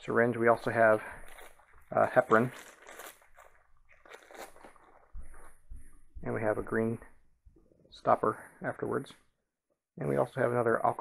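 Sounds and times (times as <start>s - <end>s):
plastic packaging crinkling: 0.5s - 5.4s.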